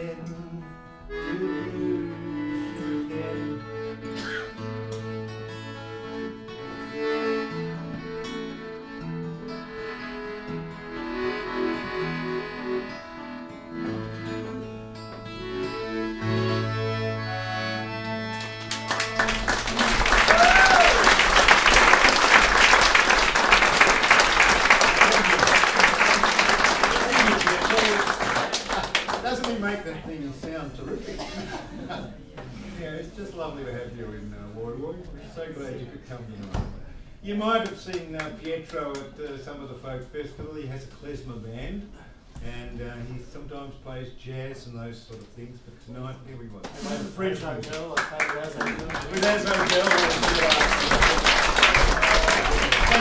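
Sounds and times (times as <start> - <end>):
acoustic guitar: 0.0 - 20.2
melodica: 1.0 - 19.4
audience applauding: 18.3 - 29.7, 47.6 - 53.0.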